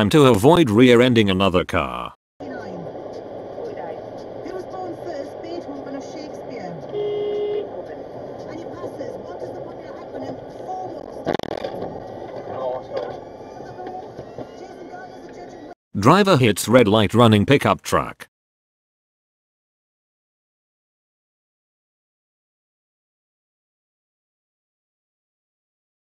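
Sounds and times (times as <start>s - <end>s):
road and tyre noise in car: 2.4s - 15.7s
car horn blast: 6.9s - 7.8s.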